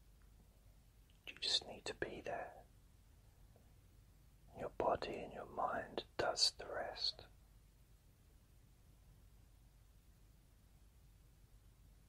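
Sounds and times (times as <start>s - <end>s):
man whispering: 1.2s - 2.7s, 4.5s - 7.4s.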